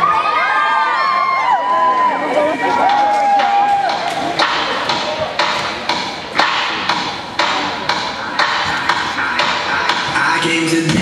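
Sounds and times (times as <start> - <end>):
children shouting and cheering: 0.0 - 5.2.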